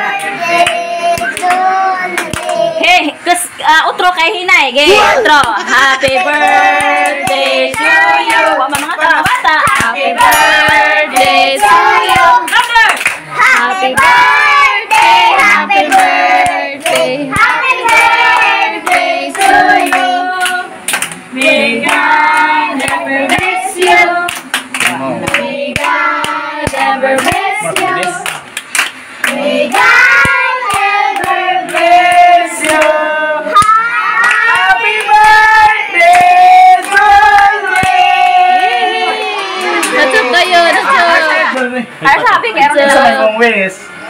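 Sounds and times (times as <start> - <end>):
group singing a birthday song: 0.0 - 44.0
hands clapping in a steady beat: 0.2 - 2.6, 5.4 - 14.2, 14.9 - 33.0, 33.6 - 40.2.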